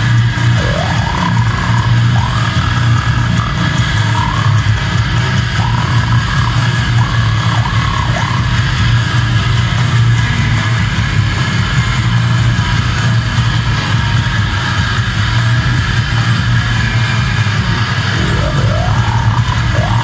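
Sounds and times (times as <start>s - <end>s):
distorted guitar and bass band: 0.0s - 20.0s.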